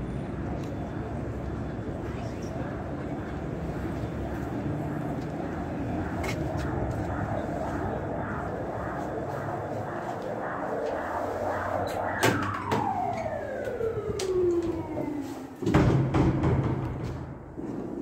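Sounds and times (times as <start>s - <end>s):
city street traffic: 0.0s - 15.8s.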